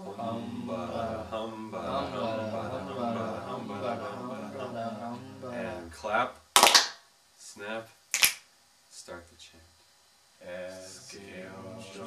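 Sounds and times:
boys chanting: 0.0s - 6.0s
sharp hand claps: 6.6s - 7.0s, 8.1s - 8.5s.

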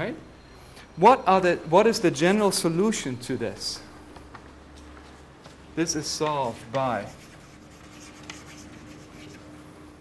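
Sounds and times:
faint room hum: 0.0s - 10.0s
chalk scratching on chalkboard: 6.8s - 9.5s.

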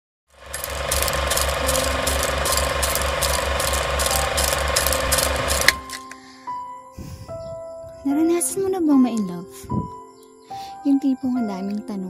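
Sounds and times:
fast mechanical rattling: 0.3s - 5.9s.

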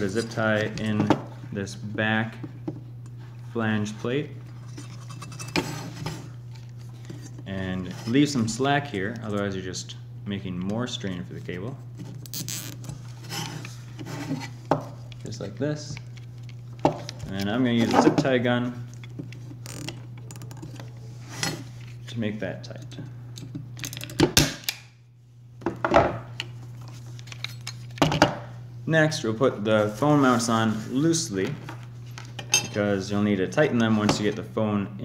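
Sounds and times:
steady low hum: 0.0s - 35.0s
game controller rubbing and rustling: 12.1s - 17.8s.

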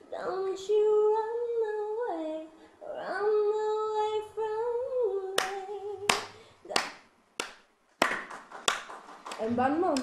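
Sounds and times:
sharp hand claps: 5.4s - 10.0s.

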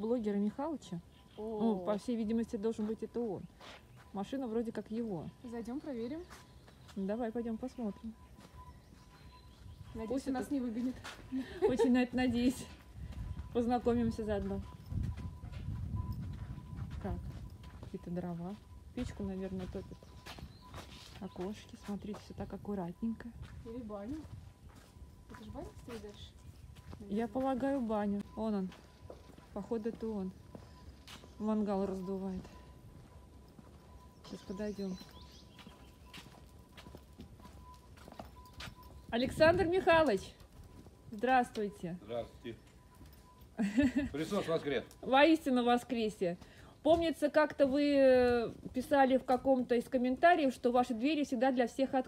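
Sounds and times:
footsteps on concrete: 2.8s - 4.4s, 6.1s - 7.2s, 8.0s - 22.6s, 23.3s - 41.7s, 44.5s - 49.7s.

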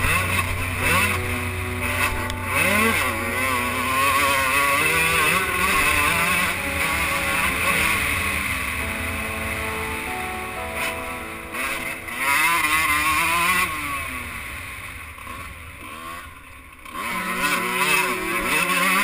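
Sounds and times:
motocross engine revving: 0.0s - 19.0s.

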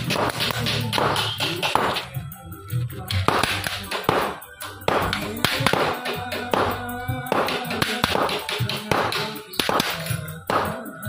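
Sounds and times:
background music with singing: 0.0s - 11.0s.

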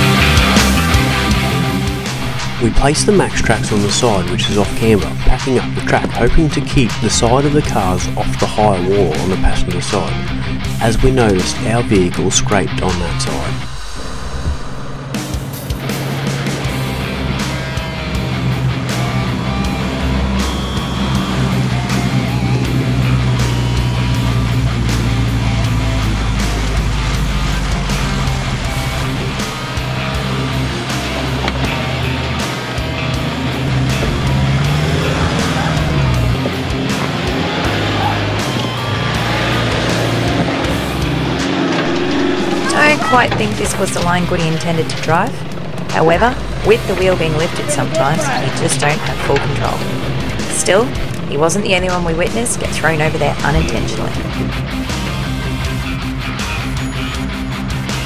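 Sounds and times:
background music: 0.0s - 58.0s
off-road vehicle engine: 0.0s - 58.0s.

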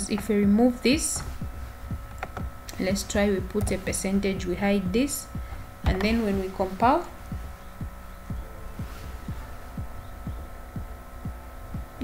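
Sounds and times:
faint steady hum: 0.0s - 12.0s
music with soft low beat: 0.0s - 12.0s.

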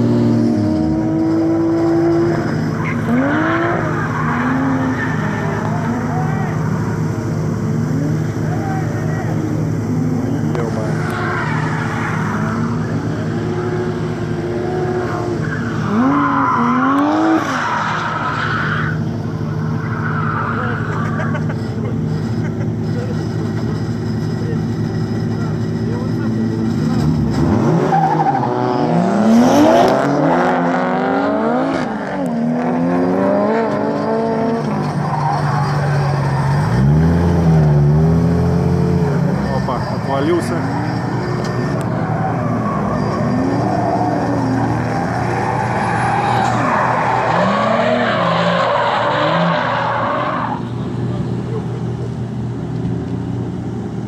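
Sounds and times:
steady engine hum: 0.0s - 16.9s, 17.6s - 27.7s
car engines revving: 0.0s - 54.0s
tyres skidding: 0.0s - 54.0s.

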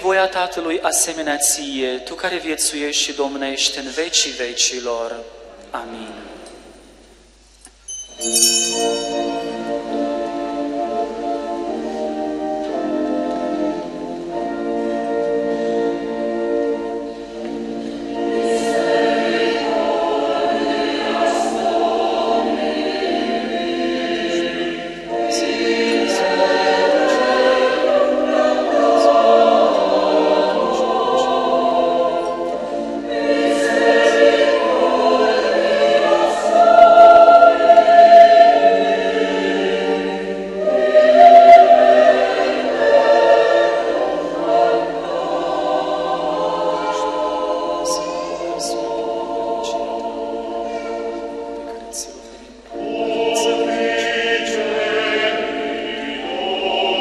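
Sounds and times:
choir singing a hymn: 8.2s - 57.0s.

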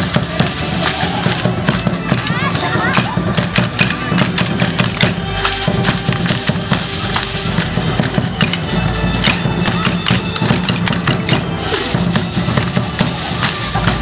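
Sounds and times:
dancers' footsteps tapping: 0.0s - 14.0s
drum beating: 0.0s - 14.0s
flute: 0.0s - 14.0s.

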